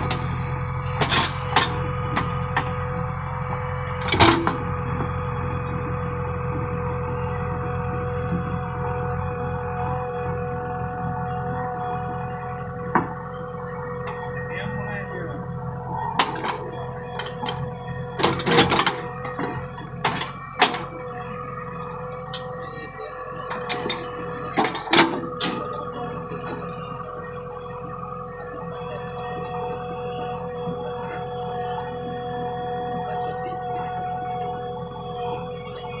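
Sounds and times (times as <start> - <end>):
diesel engine under load: 0.0 - 36.0
hydraulic whine: 0.0 - 36.0
backhoe bucket clanking: 16.0 - 22.6, 23.5 - 26.6.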